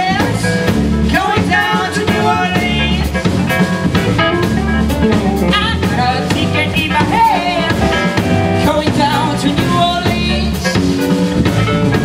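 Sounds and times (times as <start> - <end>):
live band playing blues: 0.0 - 12.0.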